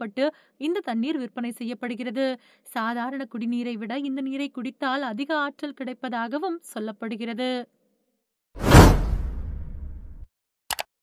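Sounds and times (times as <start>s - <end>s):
low rumble: 8.6s - 10.2s
whoosh: 8.6s - 10.3s.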